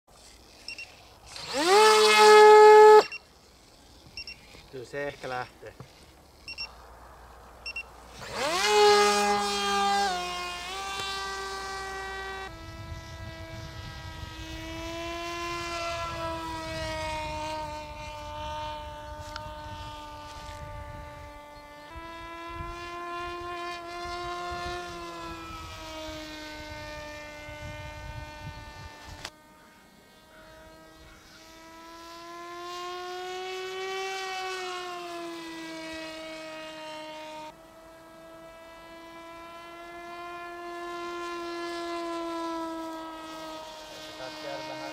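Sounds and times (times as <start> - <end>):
model plane motor whining: 0.1 - 44.9.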